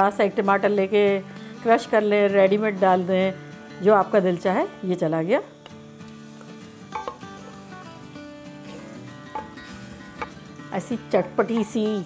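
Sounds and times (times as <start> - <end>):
tomato sizzling in pot: 0.0 - 12.0
spoon knocking against pot: 6.9 - 7.2, 9.3 - 9.6, 11.5 - 12.0.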